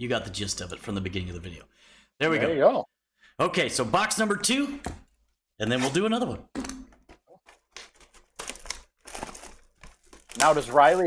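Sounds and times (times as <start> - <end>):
plastic wrapping crinkling and tearing: 7.2 - 11.0.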